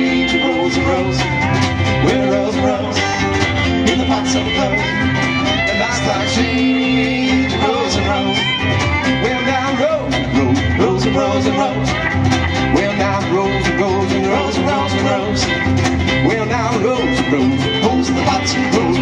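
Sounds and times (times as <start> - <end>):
fiddle: 0.0 - 12.7
acoustic guitars: 0.0 - 19.0
steel guitar: 0.0 - 19.0
upright bass: 0.0 - 19.0.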